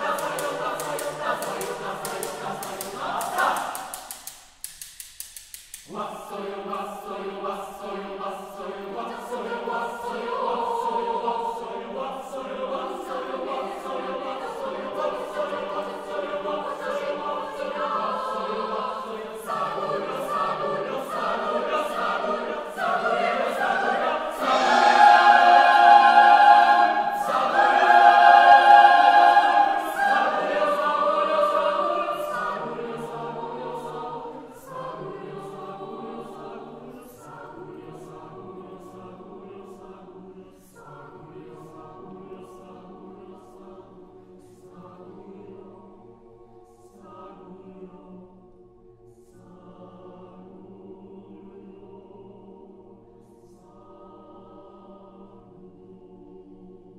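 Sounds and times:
choir singing a cappella: 0:00.0 - 0:04.5, 0:05.8 - 0:56.9.

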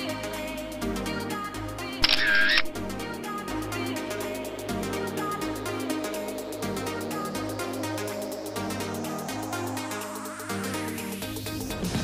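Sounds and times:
electronic background music: 0:00.0 - 0:12.0
camera shutter sound effect: 0:02.0 - 0:03.0.

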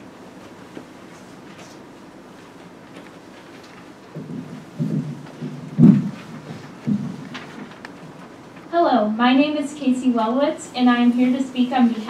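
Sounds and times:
microphone handling bumps: 0:04.1 - 0:08.3
loud microphone thump: 0:04.2 - 0:07.7.

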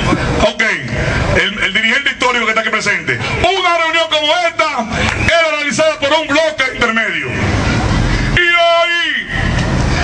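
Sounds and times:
man shouting into a microphone: 0:00.0 - 0:07.5, 0:08.3 - 0:09.6.

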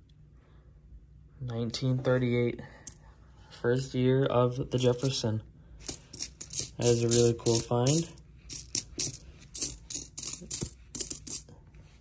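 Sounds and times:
coins clinking: 0:04.8 - 0:05.2, 0:05.8 - 0:11.5.

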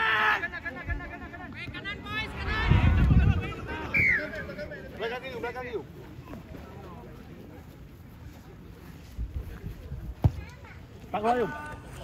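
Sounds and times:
players shouting and calling: 0:00.0 - 0:07.2, 0:10.2 - 0:12.0
low rumble: 0:02.1 - 0:03.9.

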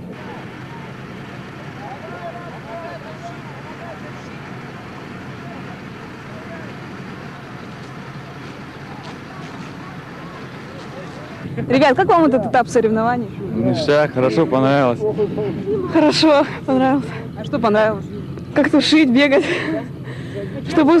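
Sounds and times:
distant voices calling: 0:00.0 - 0:21.0
engine running: 0:00.0 - 0:21.0.

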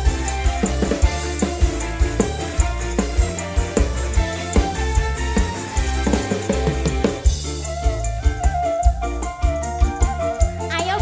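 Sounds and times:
pitch-sliding drum strokes: 0:00.0 - 0:10.7
live band music: 0:00.0 - 0:11.0.

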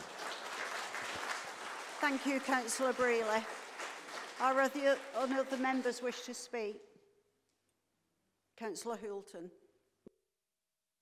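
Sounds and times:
crowd applauding: 0:00.0 - 0:06.3.

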